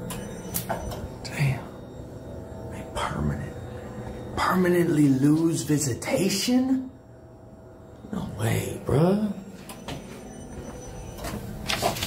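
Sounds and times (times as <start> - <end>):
steady background hum: 0.0 - 12.0
paper rustling: 11.7 - 12.0.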